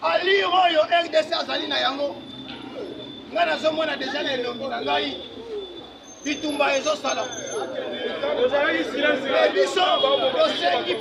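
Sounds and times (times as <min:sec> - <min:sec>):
man speaking to a crowd: 0:00.0 - 0:02.2, 0:03.3 - 0:05.3, 0:06.3 - 0:11.0.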